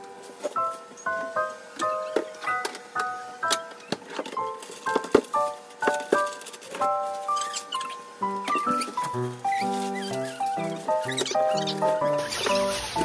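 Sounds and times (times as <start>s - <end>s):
light bouncy tune: 0.0s - 13.0s.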